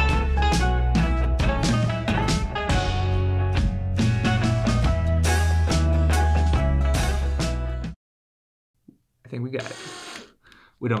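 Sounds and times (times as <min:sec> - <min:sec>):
man speaking: 0:10.8 - 0:11.0.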